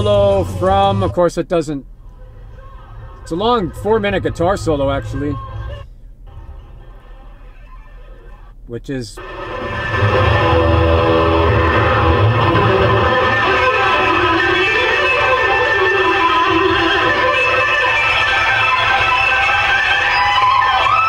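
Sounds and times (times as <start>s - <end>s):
low bass: 0.0s - 21.0s
electric guitar solo: 9.2s - 21.0s.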